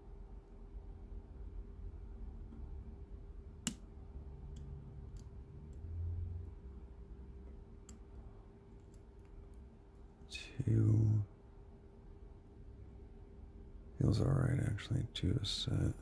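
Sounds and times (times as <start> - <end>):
faint steady hum: 0.0 - 16.0.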